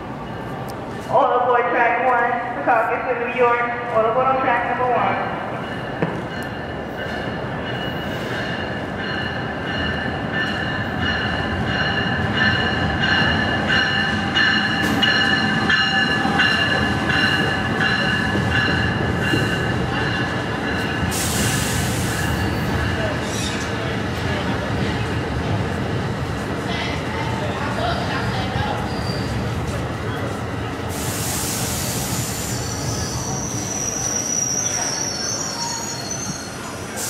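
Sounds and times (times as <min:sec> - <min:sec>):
train rumble: 0:00.0 - 0:34.2
train wheels squealing: 0:14.5 - 0:23.8, 0:28.7 - 0:29.6, 0:31.0 - 0:37.0
sharp hiss of air: 0:21.1 - 0:22.3, 0:30.9 - 0:32.9.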